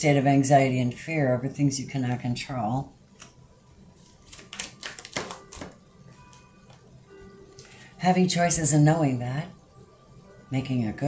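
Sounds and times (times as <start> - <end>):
cards clicking and snapping: 4.2 - 5.8.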